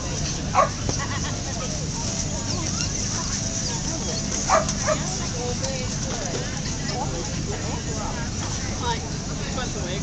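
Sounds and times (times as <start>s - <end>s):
puppy yelping: 2.6s - 5.2s.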